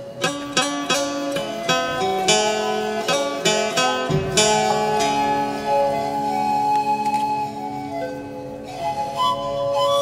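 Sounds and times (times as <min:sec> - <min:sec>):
calm instrumental spa music: 0:00.0 - 0:10.0.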